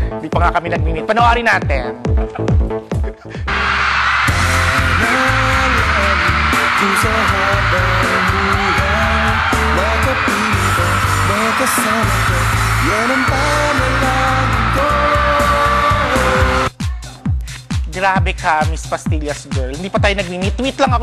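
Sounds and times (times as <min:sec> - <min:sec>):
backing track with bass pulse: 0:00.0 - 0:21.0
man singing into a microphone: 0:04.8 - 0:16.7.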